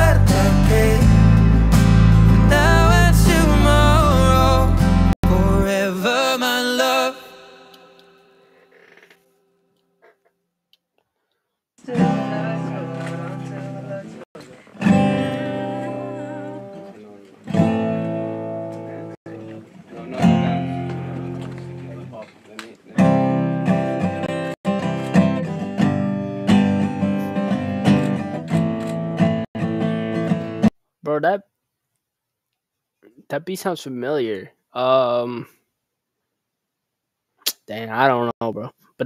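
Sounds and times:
acoustic guitar strumming: 0:00.0 - 0:08.2, 0:11.8 - 0:22.2, 0:23.0 - 0:30.7.

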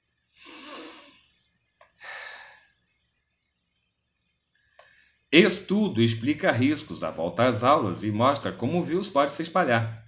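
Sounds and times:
man sighing breath: 0:02.0 - 0:02.7.

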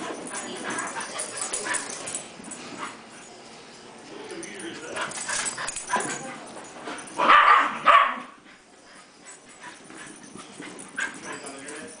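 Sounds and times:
dogs playing: 0:00.0 - 0:12.0
dog barking: 0:07.2 - 0:08.4.

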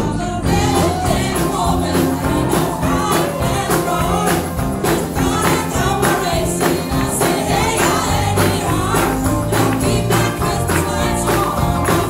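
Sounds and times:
electric guitars: 0:00.0 - 0:12.0
keyboards: 0:00.0 - 0:12.0
women singing together: 0:00.0 - 0:12.0
steady beat: 0:00.5 - 0:12.0.

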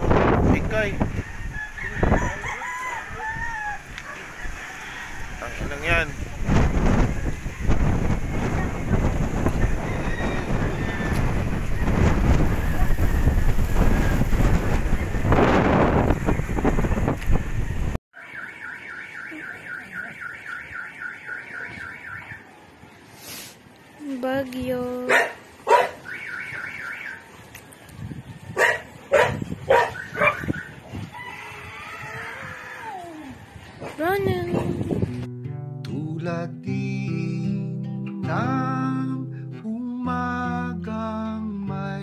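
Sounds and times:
strong wind buffeting microphone: 0:00.0 - 0:18.0, 0:27.6 - 0:35.3
rooster crowing: 0:01.0 - 0:05.6, 0:09.6 - 0:14.2, 0:31.0 - 0:33.4.

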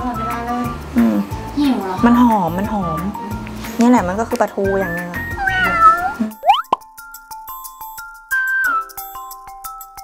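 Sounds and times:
light background music: 0:00.0 - 0:10.0
cat meowing: 0:04.9 - 0:06.3
cartoon plop sound effect: 0:06.4 - 0:06.8.

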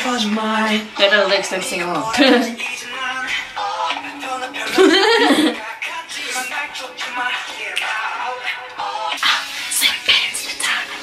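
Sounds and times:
young women talking: 0:00.0 - 0:02.6.

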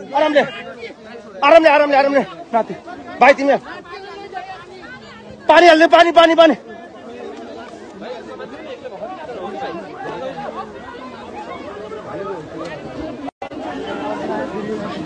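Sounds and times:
crowd talking and calling out: 0:00.0 - 0:15.0.

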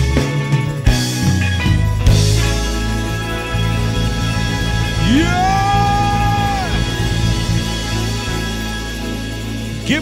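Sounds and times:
live band holding a chord: 0:00.0 - 0:10.0.

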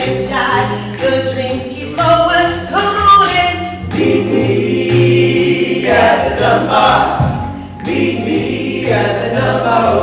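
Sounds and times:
musical backing: 0:00.0 - 0:10.0.

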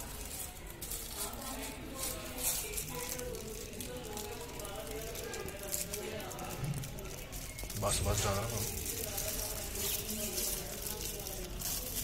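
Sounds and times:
faint voices: 0:00.0 - 0:12.0
tissue paper rustling: 0:00.0 - 0:12.0.

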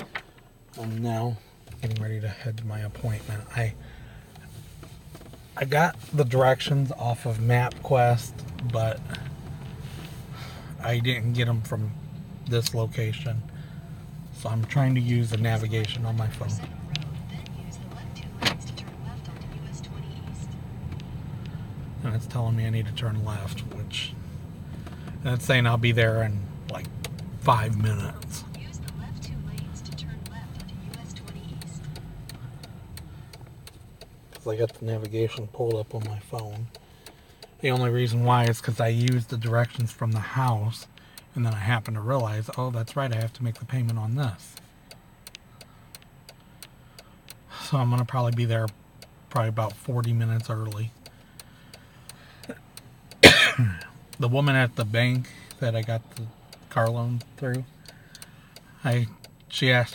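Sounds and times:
car engine rumble: 0:00.0 - 0:59.9
road noise inside car: 0:00.0 - 0:59.9
turn signal ticking: 0:00.0 - 0:59.9.

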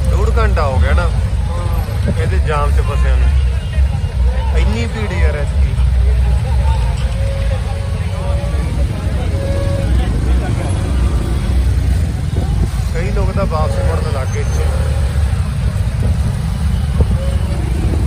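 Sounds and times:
crowd voices: 0:00.0 - 0:18.0
vehicle engines: 0:00.0 - 0:18.0.

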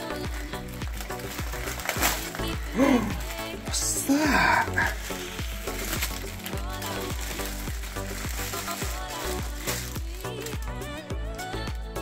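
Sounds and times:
plastic packaging crinkling: 0:00.0 - 0:11.6
background music with steady beat: 0:00.0 - 0:12.0.

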